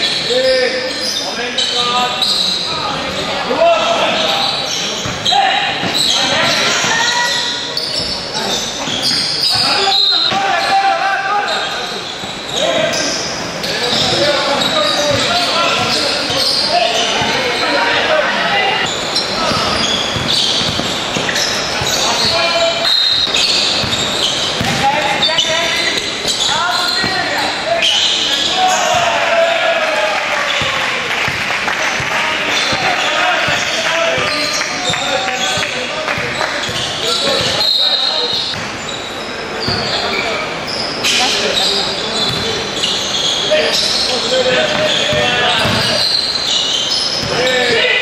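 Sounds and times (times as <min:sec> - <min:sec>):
indistinct voices calling out: 0:08.4 - 0:31.1
basketball bouncing: 0:15.1 - 0:16.4, 0:17.2 - 0:17.5, 0:19.4 - 0:27.4, 0:28.8 - 0:29.1, 0:30.6 - 0:37.6, 0:42.3 - 0:42.5, 0:44.6 - 0:45.9.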